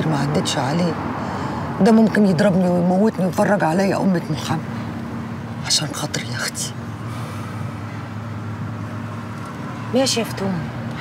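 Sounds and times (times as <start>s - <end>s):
street traffic hum: 0.0s - 11.0s.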